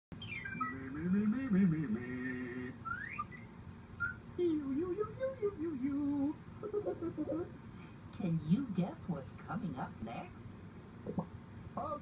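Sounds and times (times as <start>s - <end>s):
cartoon voice humming: 0.6s - 3.2s
rising whistle slide effect: 2.8s - 4.2s.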